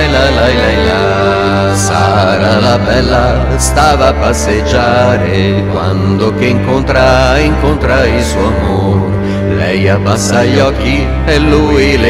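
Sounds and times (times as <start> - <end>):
person singing la la la: 0.0 - 12.0
sustained accompaniment notes: 0.0 - 12.0.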